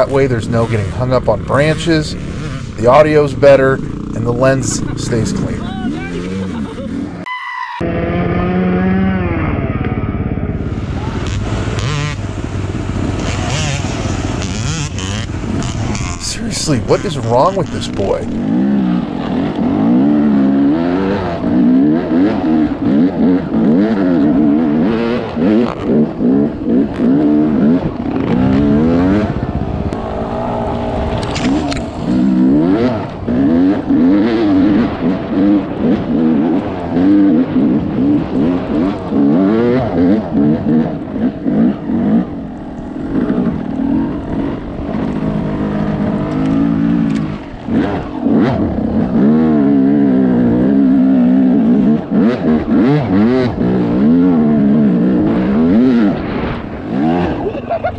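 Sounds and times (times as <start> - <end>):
dirt bike engine revving: 0.0 - 57.9.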